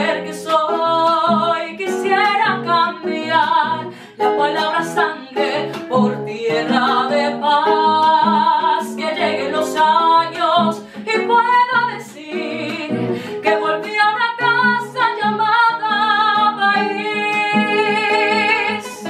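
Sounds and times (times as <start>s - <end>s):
nylon-string guitar: 0.0s - 19.0s
woman singing: 0.0s - 19.0s.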